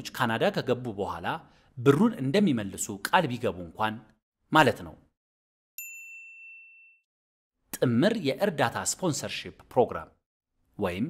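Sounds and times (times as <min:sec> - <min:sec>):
bright chime ding: 0:05.8 - 0:07.1.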